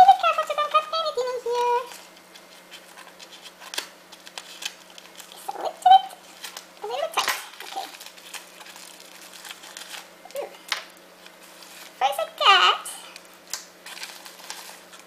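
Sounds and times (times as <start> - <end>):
child's voice: 0.0 - 1.9, 5.4 - 6.2, 6.8 - 7.9, 12.0 - 13.1
packaging crinkling and rustling: 0.0 - 12.0, 12.6 - 15.0.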